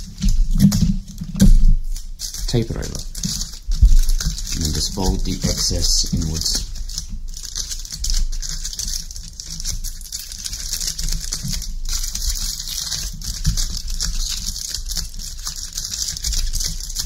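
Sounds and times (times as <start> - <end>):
aluminium foil crinkling: 0.0 - 17.0.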